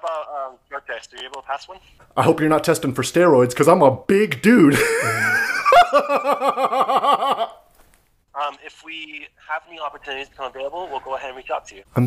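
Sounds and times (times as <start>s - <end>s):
man laughing hard: 4.7s - 7.6s.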